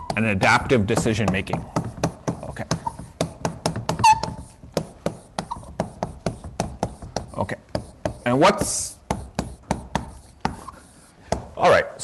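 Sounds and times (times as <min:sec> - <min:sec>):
chalk squeak: 0:00.0 - 0:00.2, 0:02.3 - 0:03.3, 0:03.9 - 0:11.2
chalk writing on a blackboard: 0:00.0 - 0:11.8.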